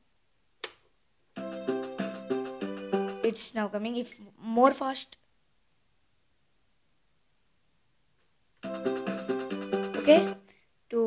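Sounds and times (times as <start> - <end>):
electronic keyboard playing song: 1.4 - 3.3, 8.6 - 10.4.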